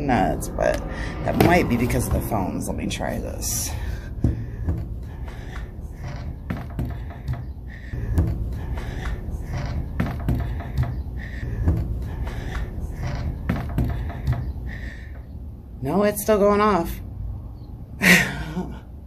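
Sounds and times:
knocks and bumps: 0:00.7 - 0:15.5.

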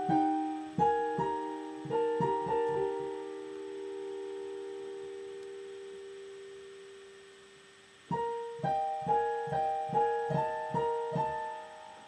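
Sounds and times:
piano chord ringing: 0:00.0 - 0:07.4, 0:08.1 - 0:12.0.

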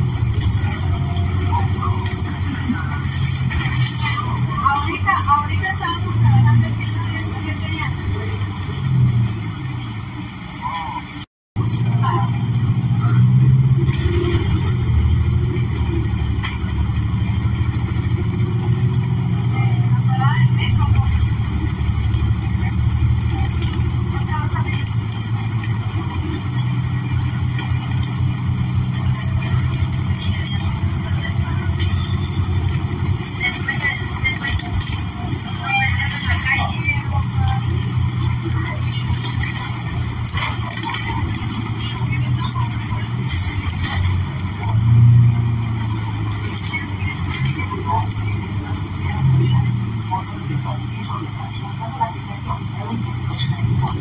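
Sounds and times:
bus engine drone: 0:00.0 - 0:54.0
passengers' voices: 0:00.0 - 0:54.0.

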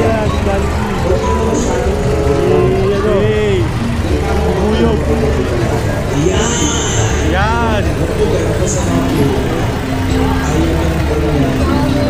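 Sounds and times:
crowd voices: 0:00.0 - 0:12.0
music: 0:00.0 - 0:12.0.

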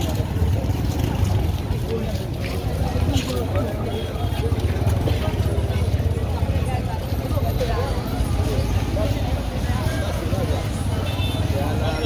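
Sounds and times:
chatter of passers-by: 0:00.0 - 0:12.0
low rumble of traffic: 0:00.0 - 0:12.0.

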